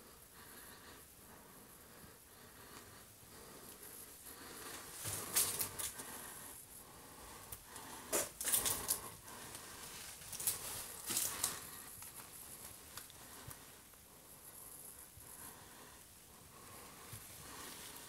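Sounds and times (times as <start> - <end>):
footsteps crunching over debris: 9.8 - 12.8.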